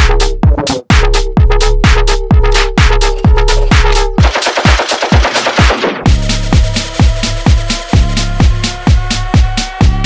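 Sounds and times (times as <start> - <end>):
kick drum beat: 0.0 - 10.0
machine-gun fire rattle: 4.2 - 6.0.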